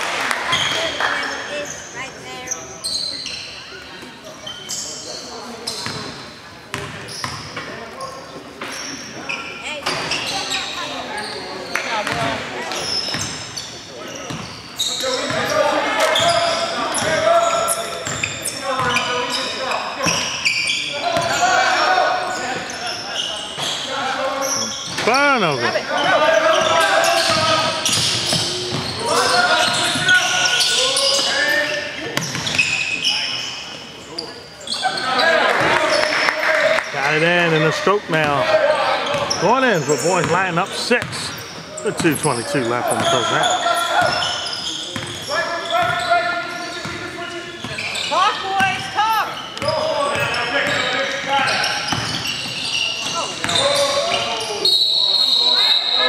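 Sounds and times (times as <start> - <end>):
players calling out: 8.8 - 56.0.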